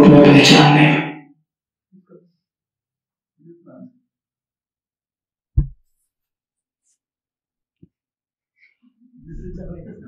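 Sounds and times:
low thump against microphone: 5.6 - 5.8.

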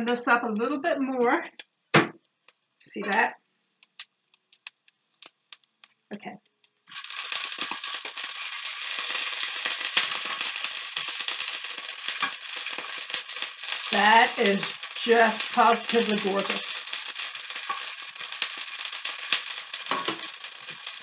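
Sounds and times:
oil popping: 1.5 - 21.0
scallops sizzling in hot oil: 3.6 - 21.0
sharp clicks: 3.8 - 6.8.

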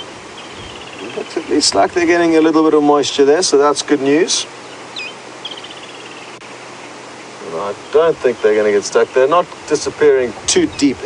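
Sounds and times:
bird trilling: 0.0 - 2.6, 4.0 - 7.0
outdoor background hiss: 0.0 - 11.0
man speaking: 1.0 - 4.5, 7.4 - 11.0.

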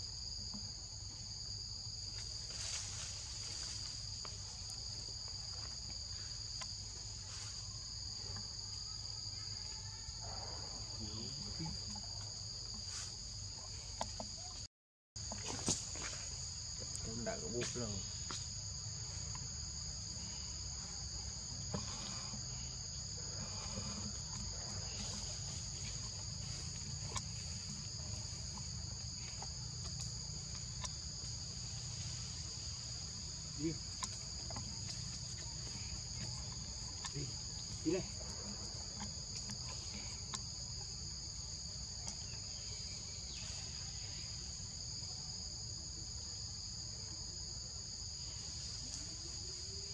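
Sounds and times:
insects droning: 0.0 - 49.9.

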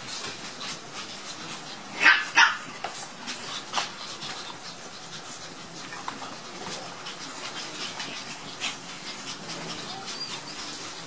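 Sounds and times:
puppy yapping: 1.9 - 2.8.

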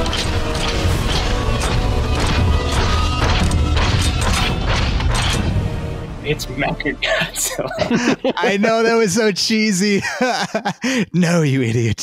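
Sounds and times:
monster movie music: 0.0 - 9.2.

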